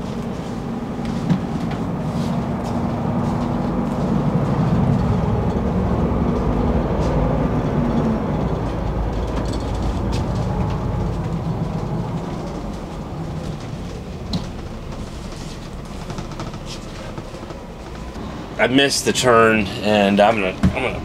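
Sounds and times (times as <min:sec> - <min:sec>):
bus engine and tyre rumble: 0:00.0 - 0:21.0.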